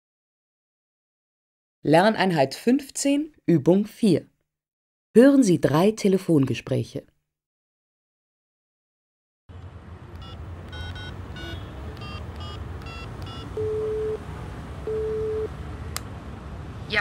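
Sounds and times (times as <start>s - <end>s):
call pickup click: 10.1s - 14.0s
telephone ringing tones: 10.2s - 14.2s, 14.8s - 15.5s
touch-tone key beeps: 10.2s - 14.2s, 14.9s - 15.5s.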